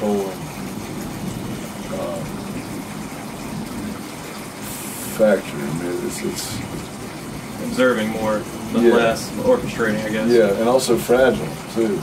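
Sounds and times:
steady rushing hiss: 0:00.0 - 0:12.0.

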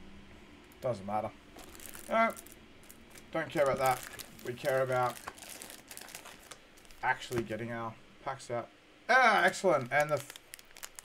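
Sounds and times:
foil packs crinkling: 0:01.6 - 0:07.6, 0:09.3 - 0:11.0.

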